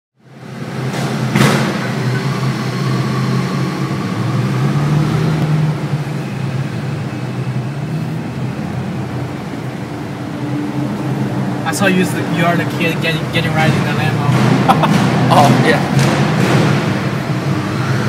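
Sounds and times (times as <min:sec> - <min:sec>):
car engine deep hum: 0:00.2 - 0:18.0.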